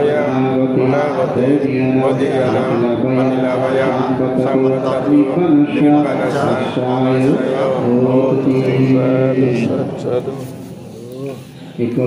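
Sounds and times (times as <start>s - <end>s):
man chanting in held notes: 0.0s - 12.0s.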